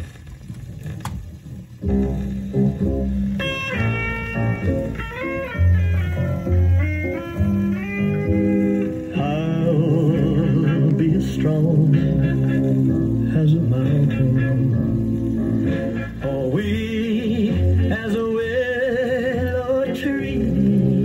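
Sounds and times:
guitar pop music from a record: 1.8 - 21.0.

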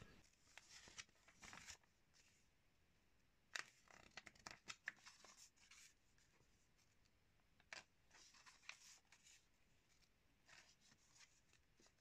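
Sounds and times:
magazine pages turning: 0.5 - 1.9, 3.6 - 5.8.

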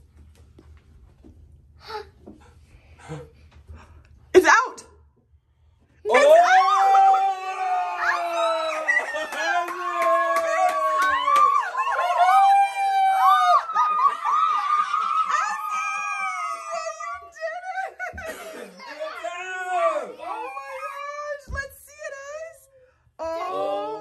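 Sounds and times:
girls squealing and laughing: 12.8 - 19.0.

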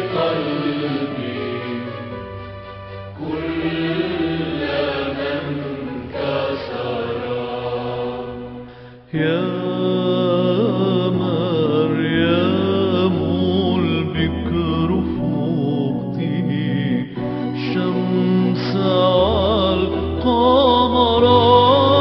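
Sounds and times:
voice chanting ornamented notes: 0.0 - 2.5, 3.1 - 22.0
steady drone: 0.0 - 9.1.

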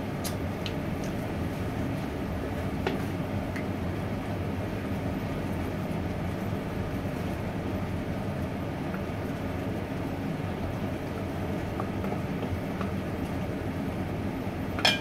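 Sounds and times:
range hood fan drone: 0.0 - 15.0.

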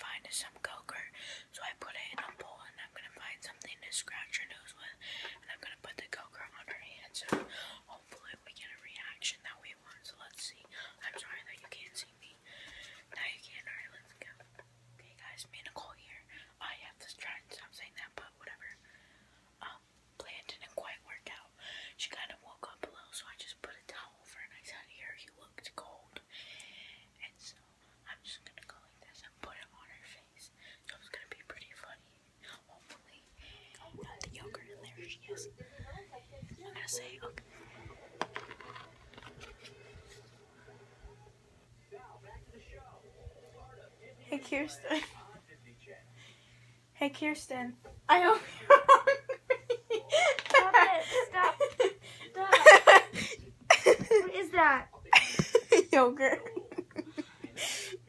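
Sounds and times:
woman whispering: 0.0 - 18.8, 19.6 - 37.9, 44.2 - 45.3.

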